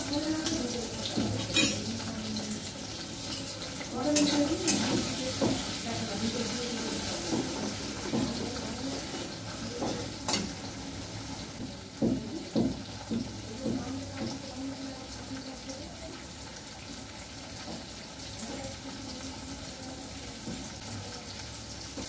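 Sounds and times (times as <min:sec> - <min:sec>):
food sizzling in a pan: 0:00.0 - 0:22.0
utensil clinking against pan: 0:00.1 - 0:02.5.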